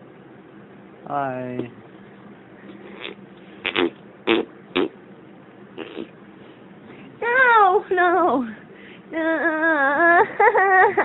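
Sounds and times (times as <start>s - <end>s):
person blowing raspberries: 2.8s - 5.0s, 5.8s - 6.2s.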